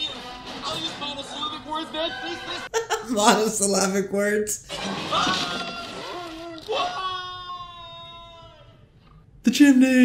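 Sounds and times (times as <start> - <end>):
person screaming: 5.1 - 8.8
person shouting: 5.5 - 8.7.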